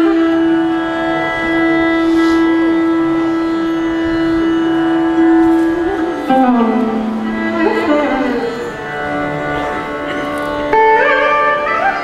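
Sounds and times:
faint lower notes: 0:00.0 - 0:12.0.

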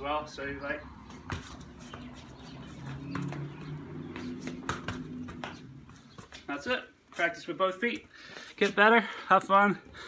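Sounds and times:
ball taps on concrete: 0:02.8 - 0:06.4.

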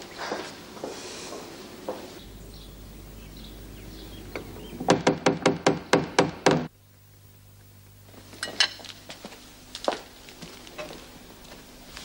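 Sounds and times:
rapid sharp knocks: 0:04.8 - 0:06.7.

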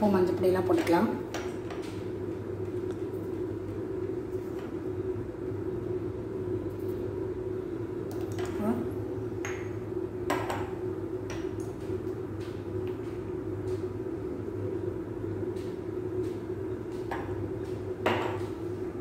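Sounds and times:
steady kitchen hum: 0:00.0 - 0:19.0.

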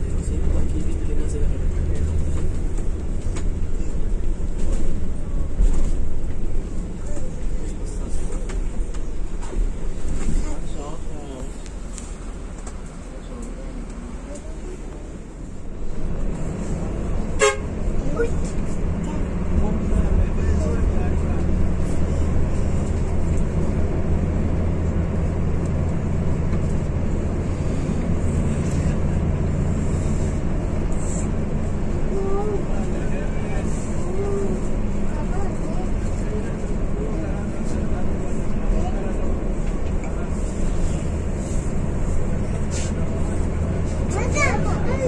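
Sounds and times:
bus diesel engine: 0:00.0 - 0:45.0
vehicle horns: 0:17.3 - 0:17.8.

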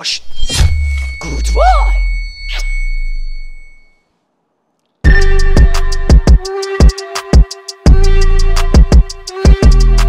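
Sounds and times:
low background music: 0:05.1 - 0:10.0.

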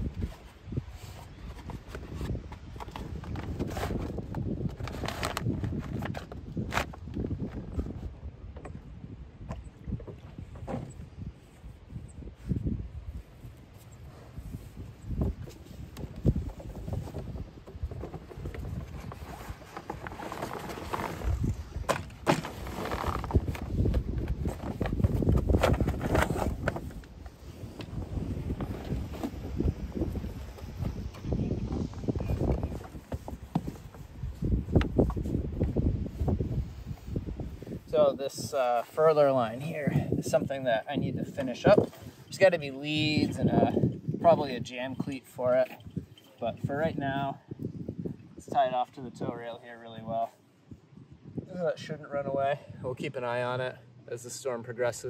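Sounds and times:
rope and sailcloth rustling: 0:00.0 - 0:08.1, 0:11.3 - 0:43.4
low microphone rumble: 0:14.1 - 0:38.2.

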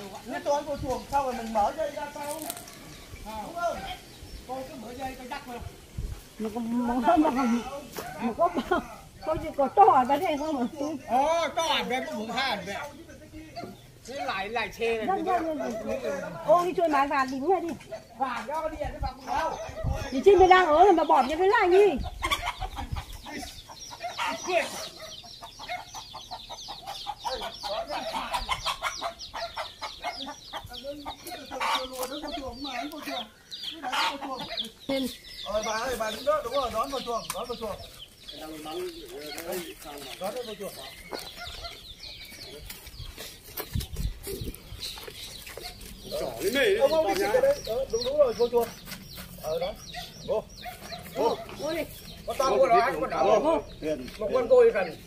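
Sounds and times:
chickens clucking: 0:00.0 - 0:55.0.

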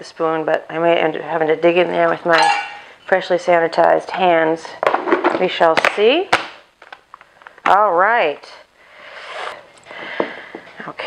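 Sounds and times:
heavy breathing: 0:08.8 - 0:10.8.

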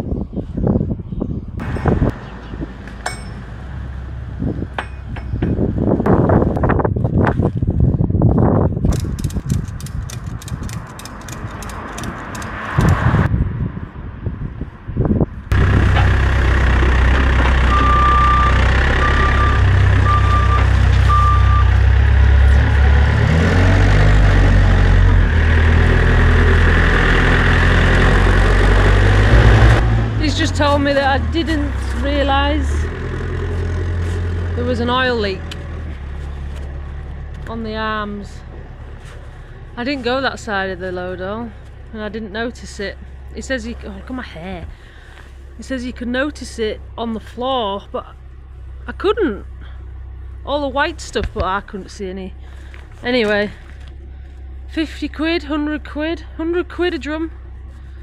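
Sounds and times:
load strap clicks and rattles: 0:08.8 - 0:13.0
diesel engine running: 0:15.5 - 0:58.0
short beeps: 0:17.7 - 0:21.7.

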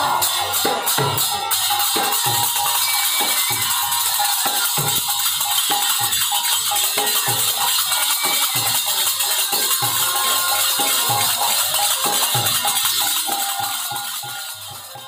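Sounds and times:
bamboo flute melody: 0:00.0 - 0:15.0
clay drums beating: 0:00.0 - 0:15.0
jangling hand cymbals: 0:00.0 - 0:15.0.

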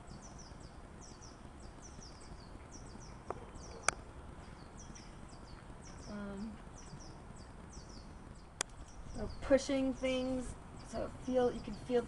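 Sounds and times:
small bird chirping: 0:00.0 - 0:12.0
sharp clicks: 0:08.6 - 0:08.9.

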